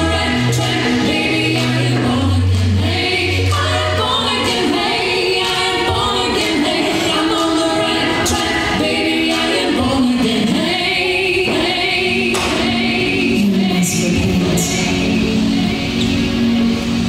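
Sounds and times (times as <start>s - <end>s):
group of voices singing: 0.0s - 17.0s.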